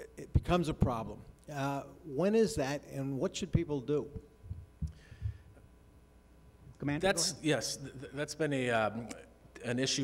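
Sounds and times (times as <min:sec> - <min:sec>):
microphone handling thumps: 0:04.2 - 0:05.6.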